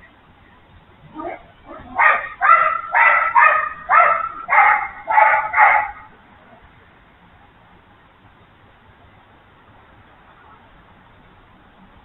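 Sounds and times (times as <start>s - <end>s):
fox yelping calls: 1.1s - 6.1s.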